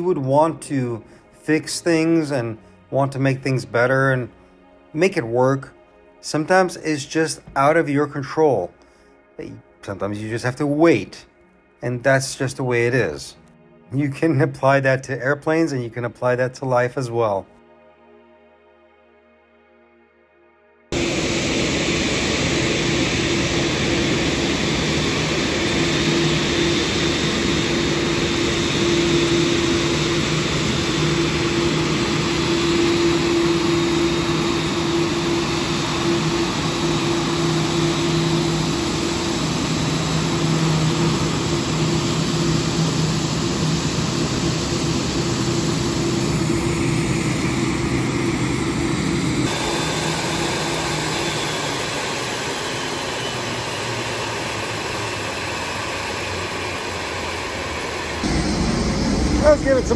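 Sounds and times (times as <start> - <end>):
jet turbines whining: 0.0 - 17.1, 20.9 - 59.9
low hum tones: 20.9 - 59.9.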